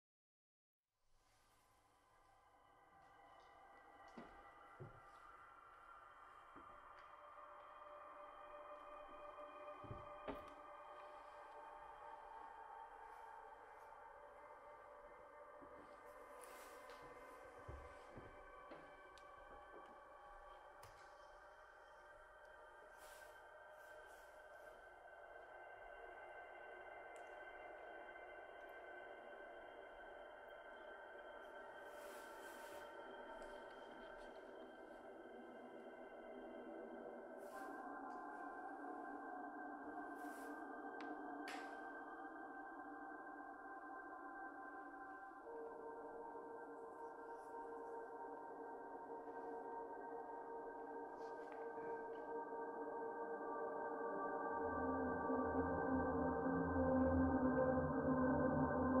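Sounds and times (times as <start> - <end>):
electroacoustic drone music: 2.6 - 59.0.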